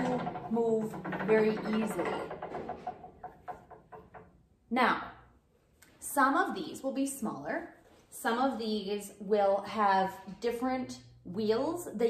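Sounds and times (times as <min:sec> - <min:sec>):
machine carriage sliding: 0:00.0 - 0:03.9.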